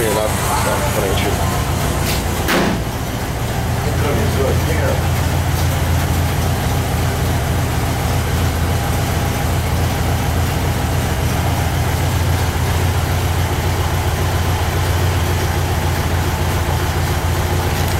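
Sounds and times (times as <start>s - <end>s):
engine idling: 0.0s - 17.9s.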